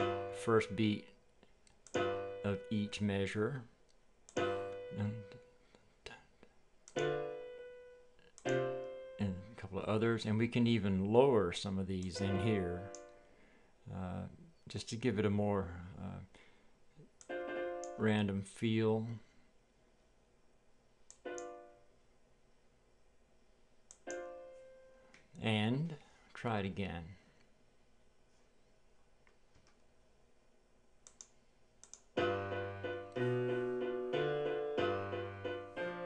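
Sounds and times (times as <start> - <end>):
rock piano chords: 0.0 - 0.9, 2.0 - 3.4, 4.4 - 5.4, 7.0 - 9.4, 12.1 - 13.1, 32.2 - 36.0
faint mouse click: 21.0 - 21.5, 31.0 - 32.1.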